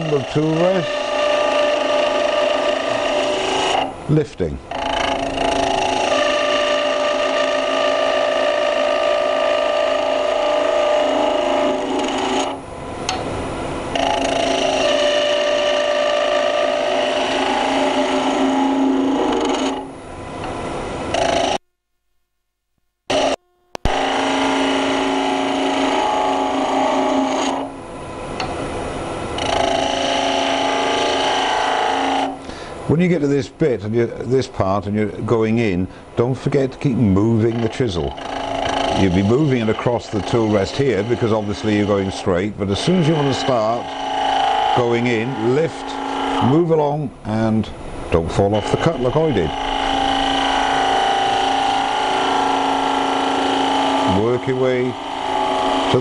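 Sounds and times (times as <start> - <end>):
chisel cutting wood on lathe: 0.0 - 3.9, 4.7 - 12.6, 13.9 - 19.9, 21.1 - 21.6, 23.1 - 27.7, 29.4 - 32.4, 36.5 - 56.0.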